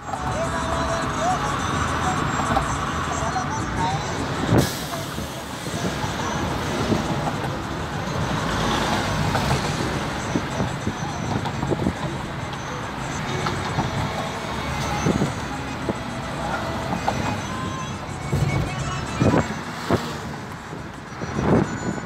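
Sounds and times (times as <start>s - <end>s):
road and traffic noise: 0.0s - 22.0s.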